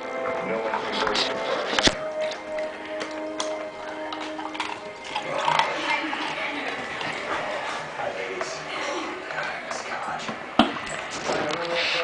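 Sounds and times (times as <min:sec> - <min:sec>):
background music: 0:00.0 - 0:12.0
dog crunching ice cubes: 0:00.9 - 0:07.4.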